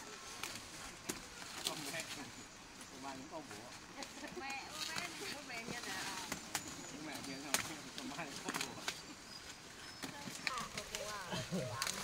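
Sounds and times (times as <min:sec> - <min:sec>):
dry corn stalks rustling: 0:00.0 - 0:12.0
faint voices: 0:00.0 - 0:12.0
stalks snapping: 0:06.2 - 0:09.1, 0:10.0 - 0:12.0.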